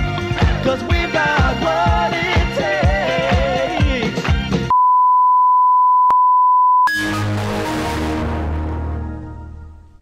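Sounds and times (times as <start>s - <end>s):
music: 0.0s - 4.7s, 6.9s - 10.0s
steady electronic beep: 4.7s - 8.2s.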